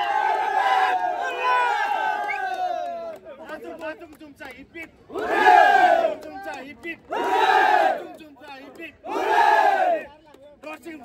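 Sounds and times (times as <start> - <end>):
crowd shouting a cheer in unison: 0.0 - 3.2, 5.1 - 8.2, 9.0 - 10.1.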